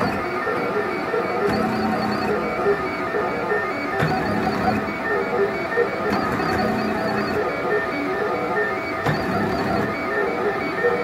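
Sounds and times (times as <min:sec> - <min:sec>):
stepper motors whining: 0:00.0 - 0:11.0.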